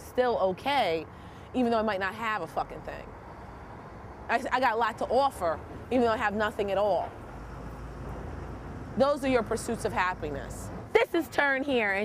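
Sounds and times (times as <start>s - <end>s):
low traffic rumble: 0.0s - 12.0s.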